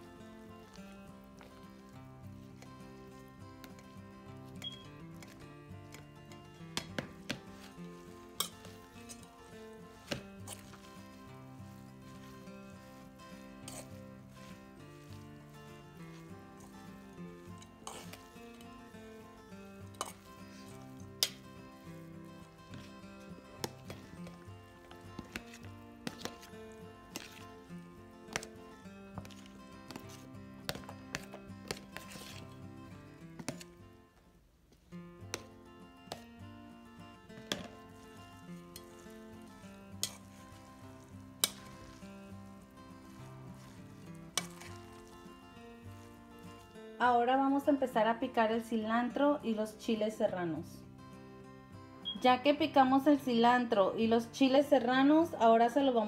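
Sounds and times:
soft background music: 0.0s - 34.2s, 35.0s - 56.0s
metal spoon clinking in bowl: 19.9s - 20.3s.

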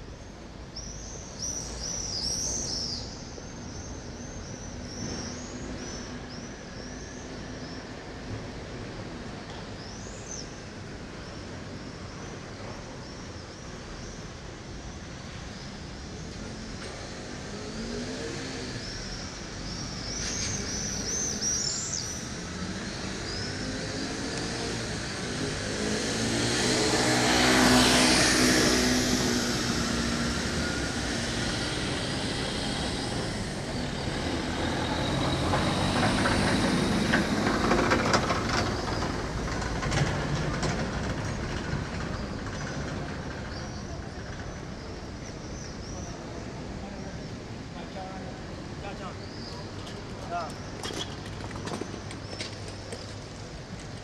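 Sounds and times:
vehicle engine passing: 22.3s - 43.1s.

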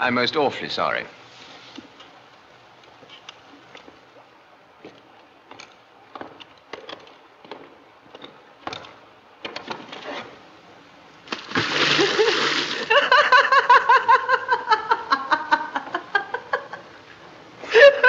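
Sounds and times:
loud splash in water: 11.3s - 12.9s
people laughing: 11.8s - 18.0s.

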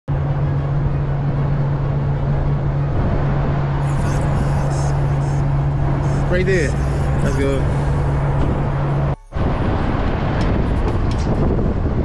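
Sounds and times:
diesel truck engine idling: 3.8s - 10.6s.

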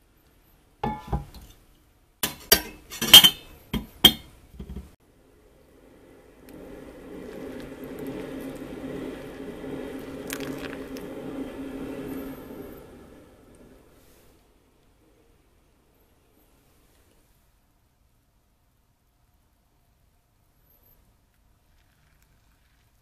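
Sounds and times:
glassware and kettle clinking: 0.8s - 1.5s, 2.2s - 4.9s
hot water pouring: 5.6s - 14.3s, 21.3s - 23.0s.

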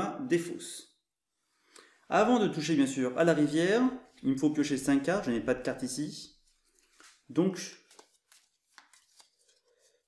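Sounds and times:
cards being shuffled: 6.4s - 10.0s.

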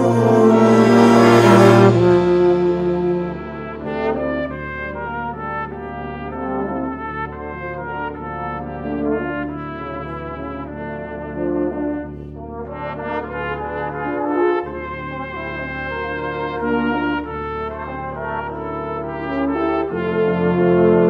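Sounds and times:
euphonium playing low part: 0.0s - 5.0s
cornet playing slow melody: 0.0s - 21.0s.

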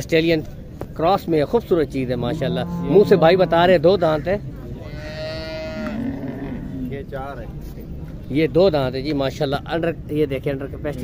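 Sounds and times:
cow mooing: 2.2s - 3.9s, 4.8s - 7.0s.

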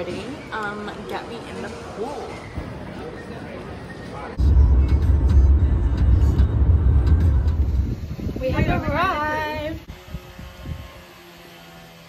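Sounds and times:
low rumbling: 4.3s - 10.8s.

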